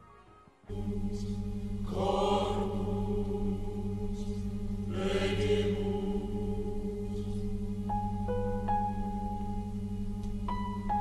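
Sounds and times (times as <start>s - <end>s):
droning chant-like music: 0.6s - 11.0s.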